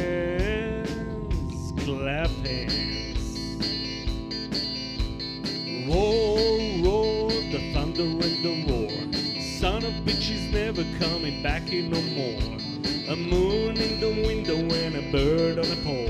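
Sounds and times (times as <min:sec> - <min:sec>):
electric guitar bending notes: 0:00.0 - 0:16.0
live rock band playing: 0:00.0 - 0:16.0.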